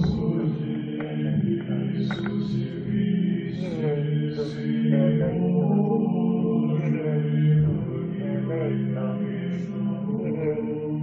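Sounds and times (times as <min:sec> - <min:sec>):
slow repetitive chant: 0:00.0 - 0:11.0.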